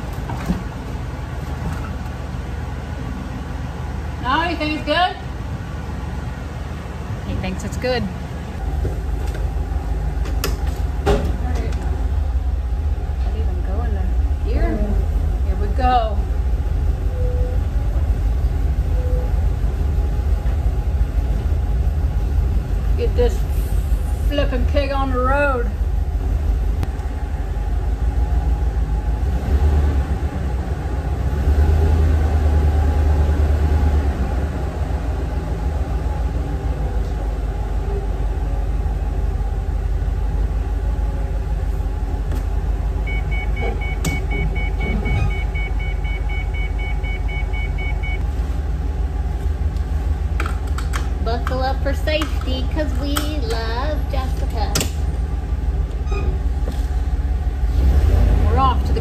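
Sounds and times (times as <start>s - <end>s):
bus engine rumbling: 0.0s - 59.0s
high electronic beeps: 43.1s - 48.2s.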